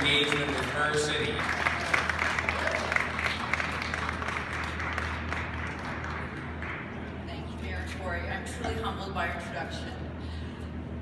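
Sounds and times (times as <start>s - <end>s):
audience applauding: 0.0s - 7.0s.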